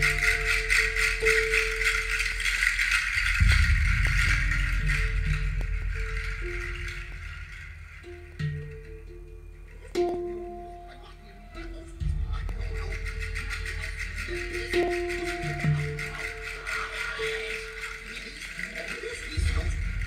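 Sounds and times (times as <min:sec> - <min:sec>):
rattle shaking: 0:00.0 - 0:20.0.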